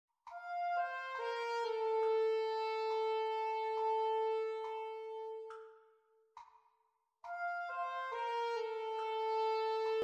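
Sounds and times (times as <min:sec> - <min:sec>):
alto saxophone long note: 0:00.7 - 0:05.5, 0:07.6 - 0:10.0.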